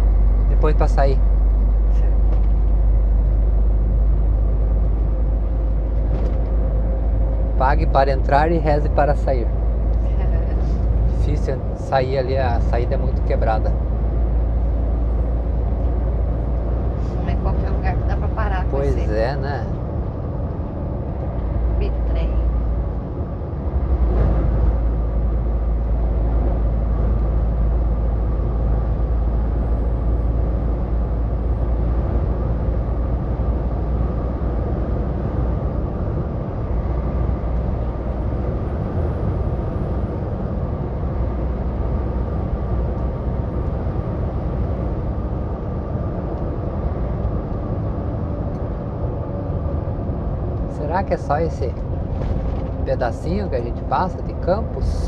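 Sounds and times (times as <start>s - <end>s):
road noise: 0.0s - 55.0s
truck engine drone: 0.0s - 55.0s.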